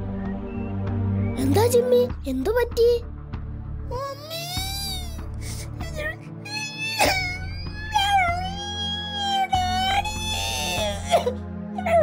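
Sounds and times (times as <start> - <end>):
background music: 0.0 - 12.0
cartoon dog whimpering: 6.5 - 11.2.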